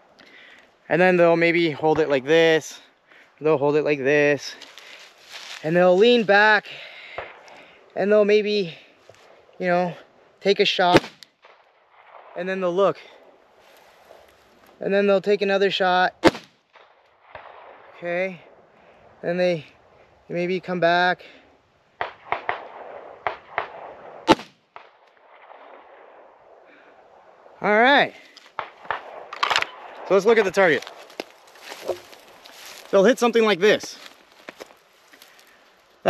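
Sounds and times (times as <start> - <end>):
pistol shot: 10.9 - 12.4, 16.2 - 17.8, 22.0 - 26.0.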